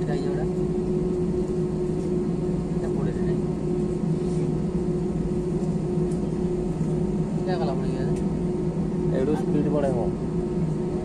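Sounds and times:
jet engine hum in cabin: 0:00.0 - 0:11.0.

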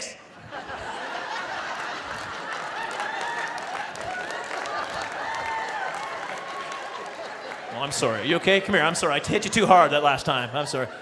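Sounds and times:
audience laughing: 0:00.0 - 0:05.7, 0:06.9 - 0:11.0
scattered applause: 0:01.0 - 0:09.8.

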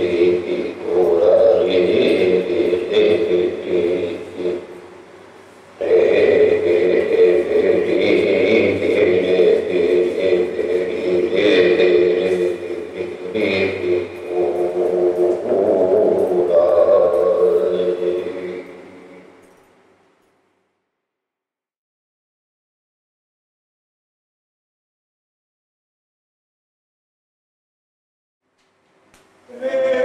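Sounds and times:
droning chanted voices: 0:00.0 - 0:19.6, 0:29.5 - 0:30.0.

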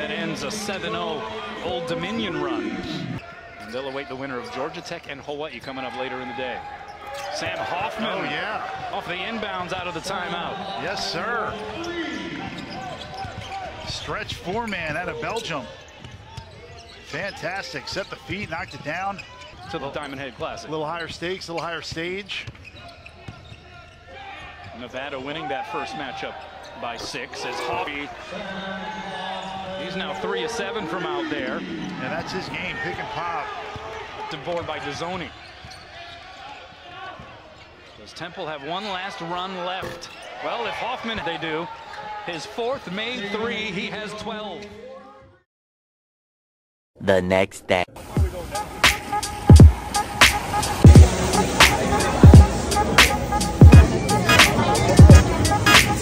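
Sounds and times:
crowd noise hum: 0:00.0 - 0:05.2, 0:05.9 - 0:14.2, 0:25.4 - 0:35.0, 0:47.1 - 0:56.0
basketball bouncing on court: 0:12.5 - 0:14.0
crowd murmur: 0:48.0 - 0:56.0
faint voices: 0:50.8 - 0:56.0.

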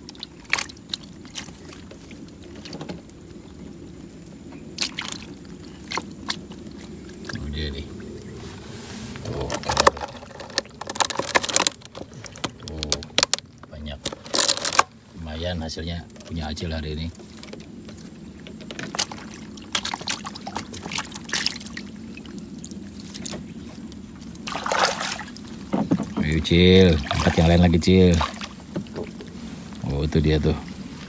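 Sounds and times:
water dripping and trickling: 0:00.0 - 0:08.3, 0:15.6 - 0:31.0
knocks on wooden boat: 0:25.7 - 0:26.4.

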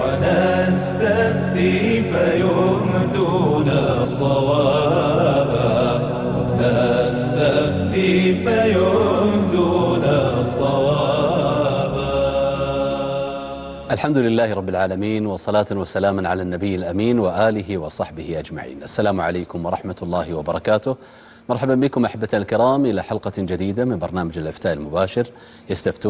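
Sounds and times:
layered chanting voices: 0:00.0 - 0:14.1.

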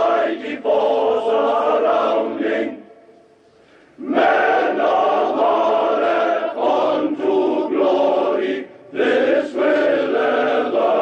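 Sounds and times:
male choir singing held notes: 0:00.0 - 0:11.0.

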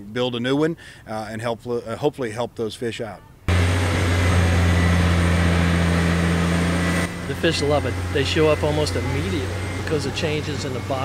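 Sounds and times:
diesel engine droning: 0:03.5 - 0:11.0.

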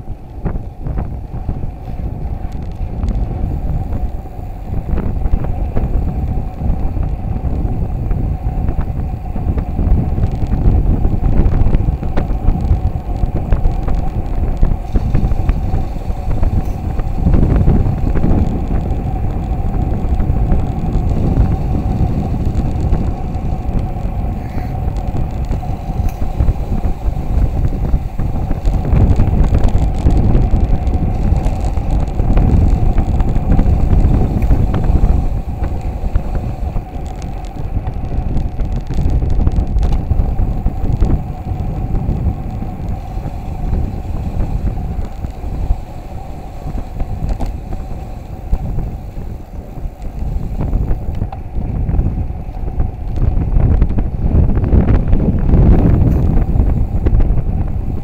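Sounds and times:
steady hum: 0:00.0 - 0:58.0
wind buffeting microphone: 0:00.0 - 0:58.0.

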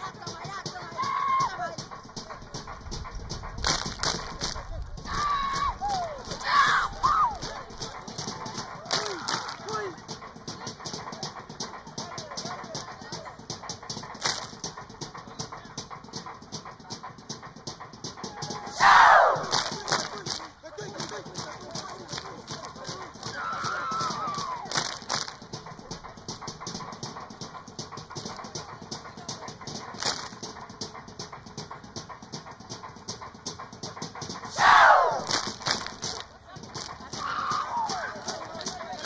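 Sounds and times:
people shouting calls: 0:00.0 - 0:02.7, 0:04.2 - 0:17.2, 0:18.0 - 0:26.9, 0:34.4 - 0:39.0
rhythmic claps and slaps: 0:00.0 - 0:39.0.

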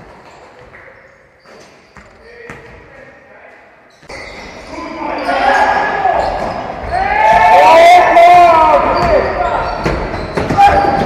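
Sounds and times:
players' voices echoing: 0:00.0 - 0:11.0
basketball bouncing on hardwood court: 0:08.9 - 0:11.0.

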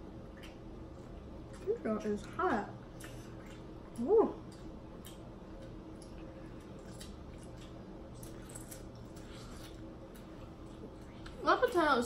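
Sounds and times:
low steady hum: 0:00.0 - 0:12.0
soft clicks and squishes of food: 0:00.2 - 0:11.8.

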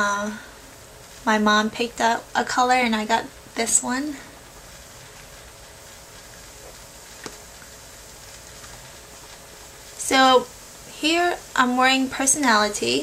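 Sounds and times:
low hiss of room tone: 0:00.0 - 0:13.0.

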